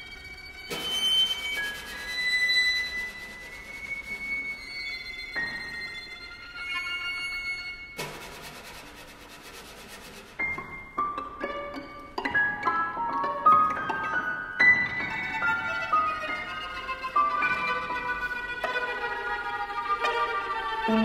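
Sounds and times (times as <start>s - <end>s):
bowed violins high sustained tones: 0.0s - 8.0s, 11.1s - 21.0s
percussion: 0.0s - 21.0s.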